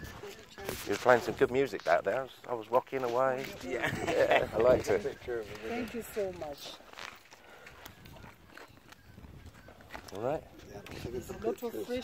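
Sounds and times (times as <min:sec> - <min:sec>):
footsteps on open ground: 0:00.0 - 0:12.0.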